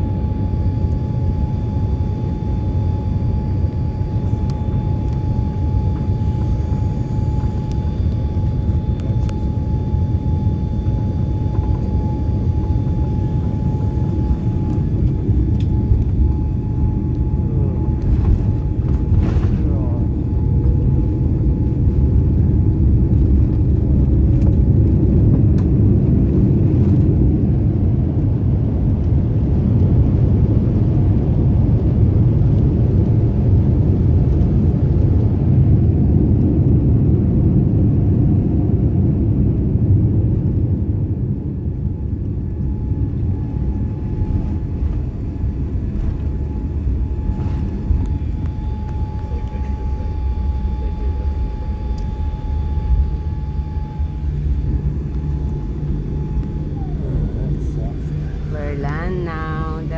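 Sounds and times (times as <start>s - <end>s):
engine and runway rumble: 0.0s - 59.9s
faint steady whine: 0.0s - 59.9s.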